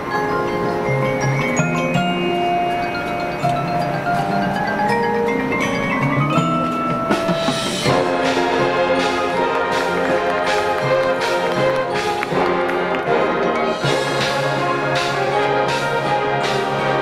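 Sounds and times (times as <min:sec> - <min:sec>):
marching band playing: 0:00.0 - 0:17.0
percussion strikes: 0:00.0 - 0:17.0.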